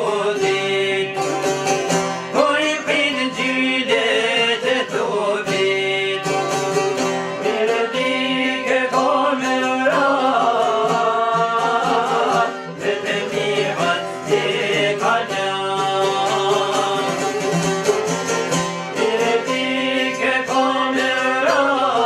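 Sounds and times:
man singing: 0.0 - 18.3, 18.9 - 22.0
plucked lute: 0.0 - 22.0
violin: 0.0 - 22.0.

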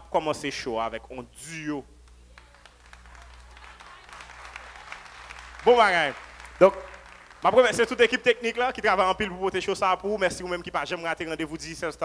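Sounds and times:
low steady hum: 0.0 - 12.0
audience applauding: 2.3 - 9.0.

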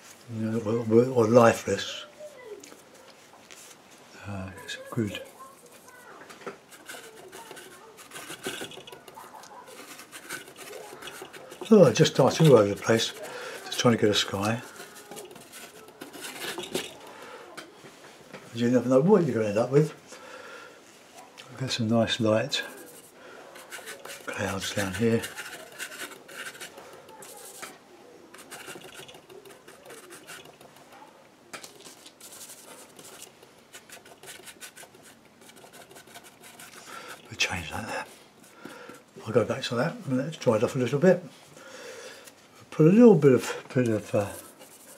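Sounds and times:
paintbrush scratching and dabbing: 4.6 - 17.2, 21.6 - 39.8, 43.7 - 44.9.

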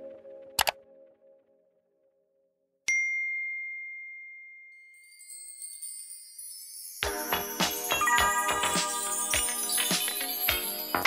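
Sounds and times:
high shimmering chime: 2.9 - 11.0.

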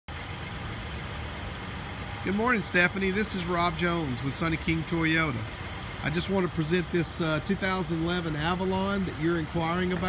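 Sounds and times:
motor vehicle engine rumble: 0.1 - 10.0.

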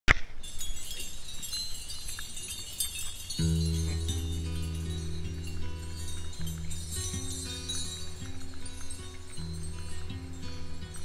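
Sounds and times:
high tinkling music notes: 0.3 - 11.0
low sustained notes: 3.3 - 11.0.

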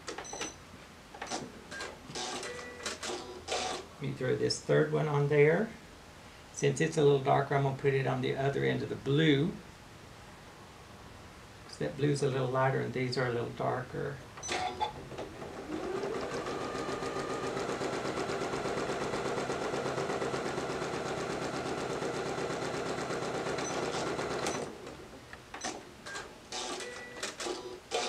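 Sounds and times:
sewing machine stitching: 14.4 - 24.7.

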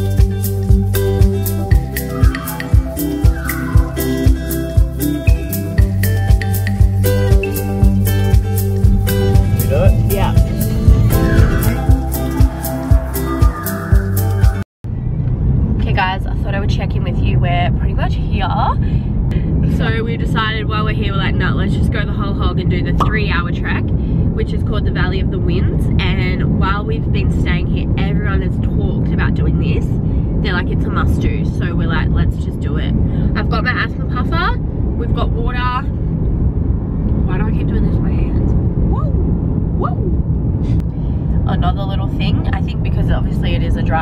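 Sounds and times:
car cabin road noise: 0.0 - 13.4, 14.9 - 44.0
music: 0.0 - 14.6
woman talking: 15.8 - 18.8, 19.7 - 35.9, 37.2 - 39.2, 41.4 - 44.0.

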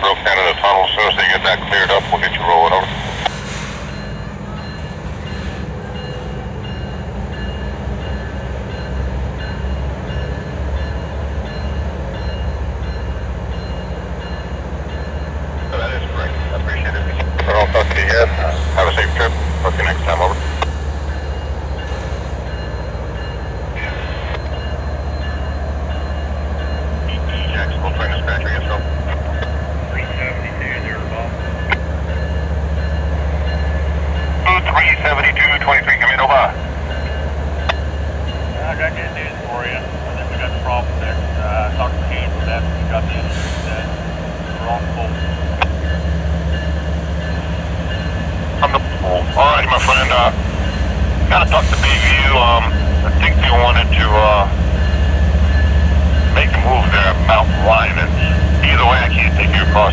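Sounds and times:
diesel locomotive engine rumbling: 0.0 - 59.9.

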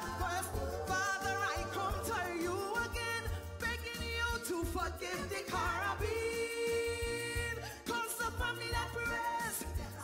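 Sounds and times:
backing music with bass and drums: 0.0 - 10.0
woman singing: 0.0 - 10.0.

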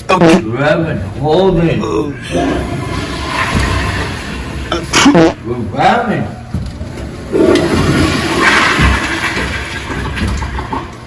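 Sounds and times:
toilet flushing: 2.2 - 5.5, 7.3 - 11.0.

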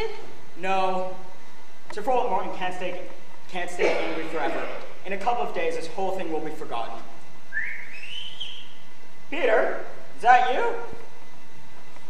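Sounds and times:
whistle rising in pitch: 7.5 - 8.9.

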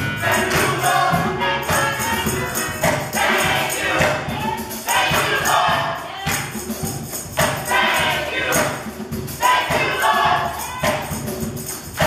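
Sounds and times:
gospel choir singing: 0.0 - 12.0
keyboard accompaniment: 0.0 - 12.0
steady rhythmic beat: 0.0 - 12.0.

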